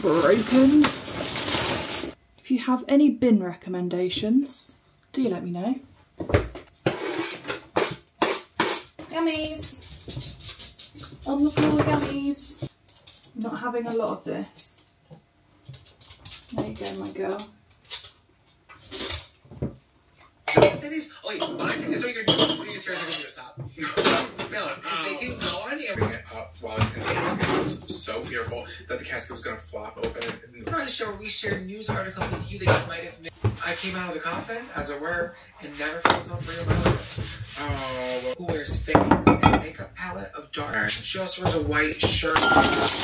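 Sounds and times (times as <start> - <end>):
dishes and cutlery clattering: 20.2 - 28.3, 41.4 - 43.0.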